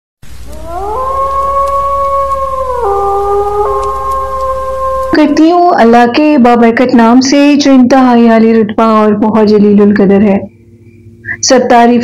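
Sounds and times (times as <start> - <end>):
wolves howling: 0.4 - 5.8.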